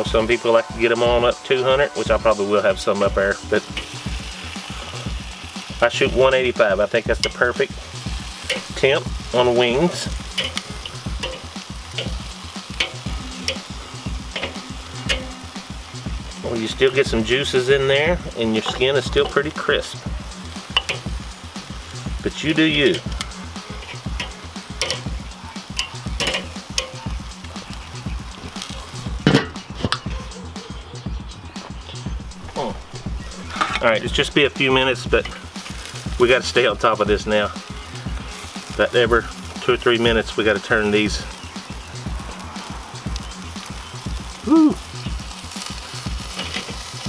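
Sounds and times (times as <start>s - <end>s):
grill lid clanking: 0.0s - 30.4s, 31.9s - 37.5s, 45.5s - 47.0s
background music with beat: 0.0s - 47.0s
chicken wings sizzling on grill: 0.0s - 47.0s
metal tongs clicking on grate: 7.2s - 7.6s, 8.3s - 8.9s, 10.0s - 13.7s, 14.3s - 15.6s, 18.5s - 19.4s, 20.6s - 21.2s, 22.8s - 27.8s, 28.5s - 30.2s, 45.5s - 47.0s.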